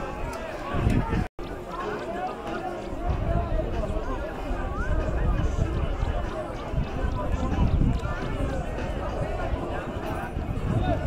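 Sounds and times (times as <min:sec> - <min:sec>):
wind on microphone: 0:00.0 - 0:01.3, 0:03.0 - 0:11.0
people chatting and calling: 0:00.0 - 0:11.0.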